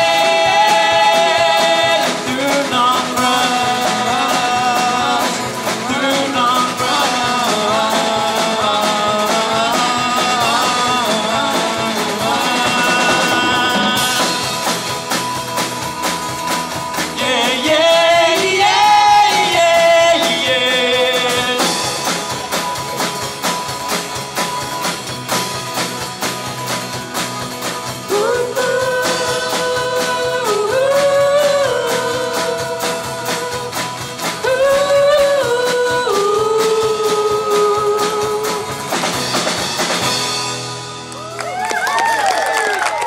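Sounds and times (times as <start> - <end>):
voices singing: 0.0 - 15.6, 16.8 - 22.4, 28.0 - 39.2
drums keeping a steady beat: 0.0 - 43.0
electric bass: 0.0 - 43.0
strummed acoustic guitars: 0.0 - 43.0.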